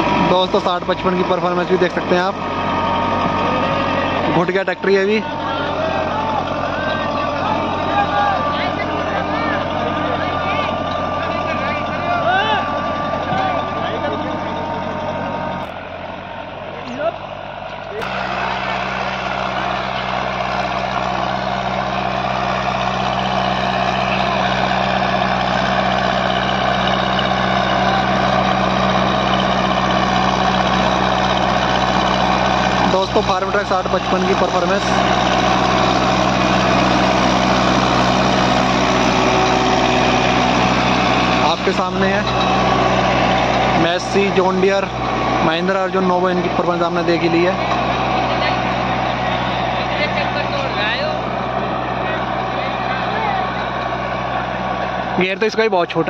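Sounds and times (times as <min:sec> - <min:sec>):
tractor engine under load: 0:00.0 - 0:56.0.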